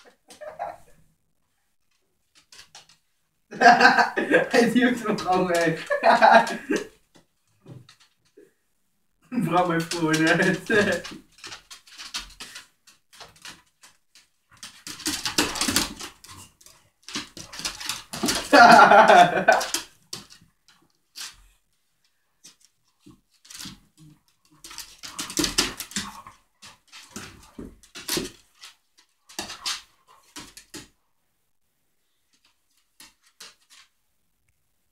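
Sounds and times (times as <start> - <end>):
dogs scuffling on a wooden floor: 4.4 - 8.4, 9.4 - 21.6, 22.4 - 31.0, 32.3 - 34.0.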